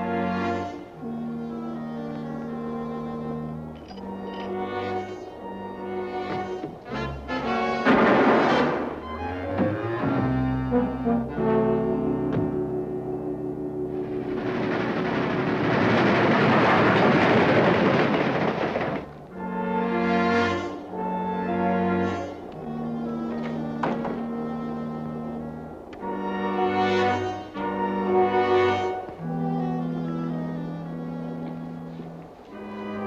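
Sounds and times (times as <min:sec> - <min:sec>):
timpani: 0:04.2 - 0:33.0
orchestral brass chords: 0:04.6 - 0:15.1, 0:19.3 - 0:33.0
train rushing past: 0:13.8 - 0:19.6.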